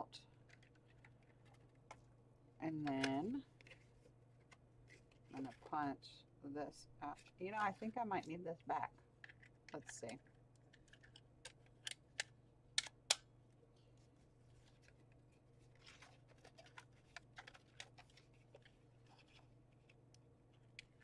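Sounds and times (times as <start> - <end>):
paper rustling: 15.6 - 20.0.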